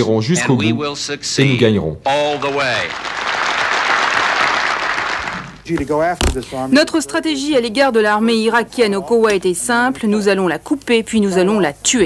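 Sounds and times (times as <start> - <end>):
audience applause: 2.1 - 5.7
man speaking: 5.7 - 7.2.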